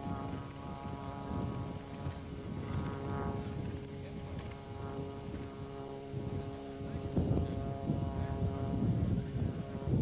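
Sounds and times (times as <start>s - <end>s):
steady droning hum: 0.0s - 10.0s
wind buffeting microphone: 0.0s - 10.0s.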